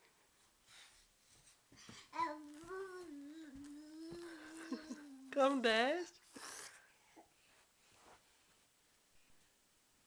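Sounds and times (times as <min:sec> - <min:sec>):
toddler humming: 0:02.1 - 0:05.3.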